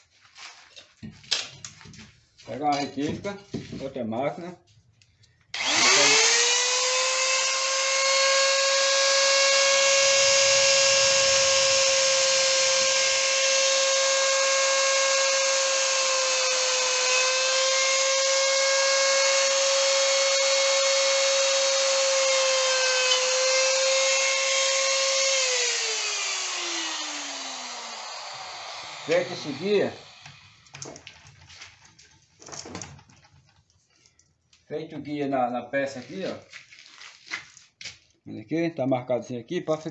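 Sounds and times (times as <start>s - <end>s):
die grinder whining: 5.5s - 31.1s.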